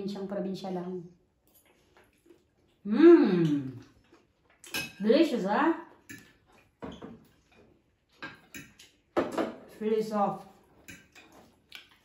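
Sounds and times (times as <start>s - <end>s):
forks clinking on plates: 4.6s - 5.0s, 6.0s - 7.1s, 8.2s - 9.6s, 10.8s - 11.5s.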